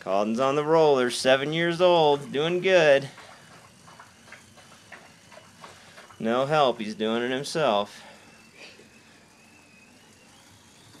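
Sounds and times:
bicycle rollers running: 0.0s - 11.0s
thin high whine: 0.0s - 11.0s.

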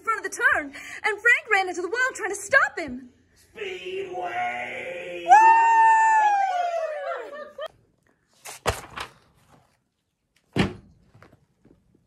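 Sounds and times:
woman cheering woo: 5.3s - 7.7s.

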